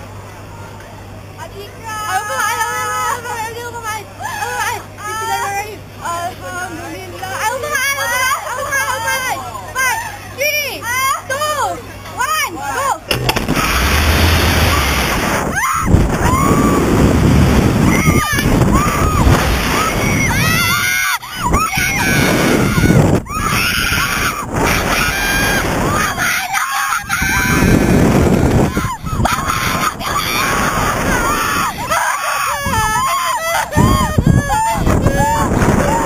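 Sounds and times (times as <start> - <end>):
wind rushing over microphone: 13.1 - 26.3, 27.0 - 32.0, 32.6 - 36.0
women screaming: 13.5 - 17.0, 17.8 - 36.0.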